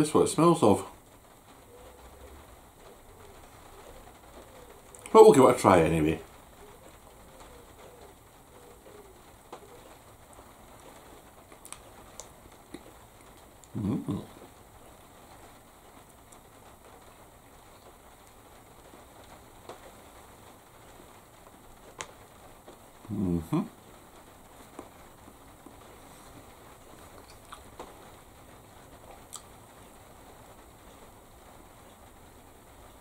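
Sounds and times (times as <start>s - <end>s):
man humming mm: 13.7s - 14.4s, 23.1s - 23.8s.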